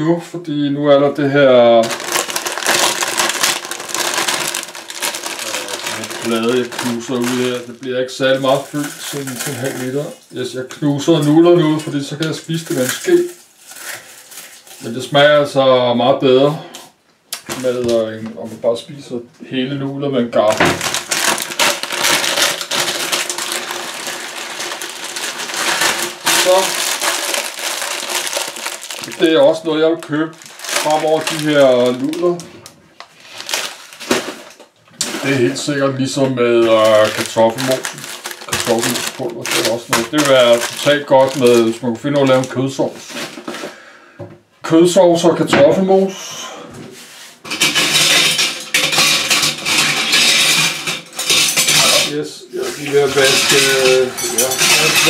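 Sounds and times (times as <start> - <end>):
plastic packet crinkling: 1.6 - 15.2, 20.4 - 43.4, 47.4 - 52.1, 52.8 - 55.0
dried noodles being crushed: 1.7 - 10.4, 20.5 - 32.4, 33.0 - 35.5, 36.5 - 42.6
dishes and cutlery clattering: 47.5 - 52.1, 53.0 - 55.0.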